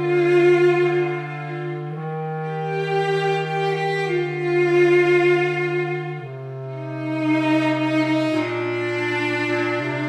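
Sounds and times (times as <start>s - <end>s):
bass clarinet: 0.0s - 10.0s
cello: 0.0s - 10.0s.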